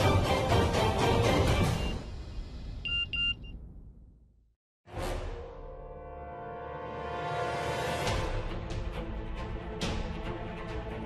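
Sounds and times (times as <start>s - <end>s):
background music: 0.0s - 2.2s, 4.9s - 11.0s
phone message beeps: 2.9s - 3.6s.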